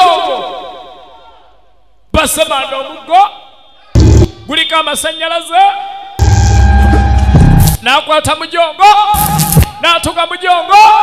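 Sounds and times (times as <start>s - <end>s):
deep electric humming: 6.2s - 7.8s.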